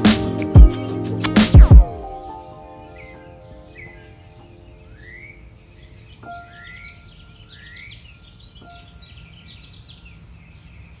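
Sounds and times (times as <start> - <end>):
soft musical notes: 0.0 - 9.2
birds whistling and chirping: 2.2 - 11.0.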